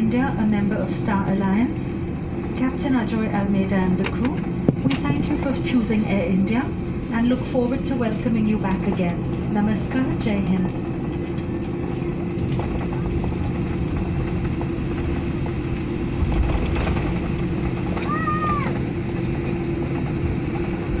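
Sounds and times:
airplane cabin hum: 0.0 - 21.0.

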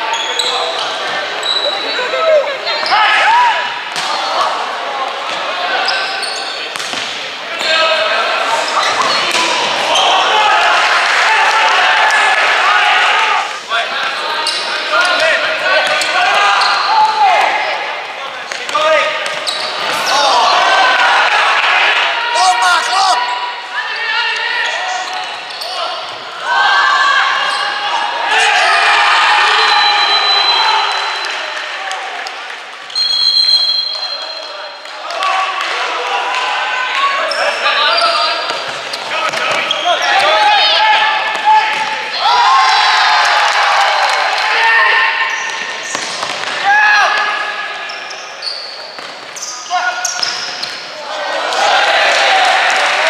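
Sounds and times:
shoes squeaking on floor: 0.0 - 3.0, 5.8 - 7.0, 8.6 - 9.4, 14.2 - 17.1, 19.2 - 20.2, 24.6 - 25.9, 37.2 - 40.2, 45.3 - 46.5, 47.8 - 50.8
players shouting: 0.0 - 32.6, 33.5 - 48.8, 49.4 - 53.0.

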